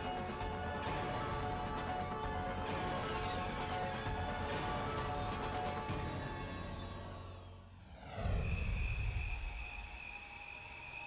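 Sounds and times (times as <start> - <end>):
crickets trilling: 8.3 - 11.0.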